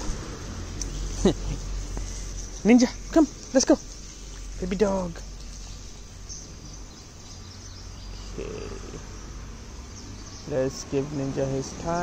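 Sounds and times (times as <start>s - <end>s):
faint bird chirps: 5.5s - 9.3s.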